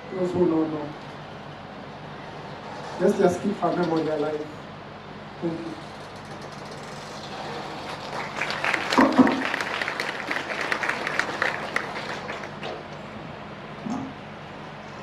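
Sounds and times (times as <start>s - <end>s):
audience applauding: 7.2s - 13.1s.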